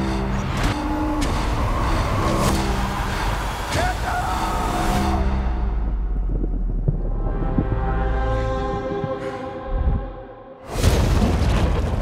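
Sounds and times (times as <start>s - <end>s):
deep steady drone: 0.0s - 10.4s
trailer music: 0.0s - 11.9s.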